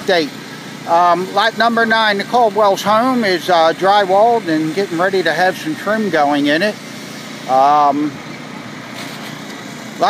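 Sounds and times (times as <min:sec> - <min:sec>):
outdoor hiss and rumble: 0:00.0 - 0:10.0.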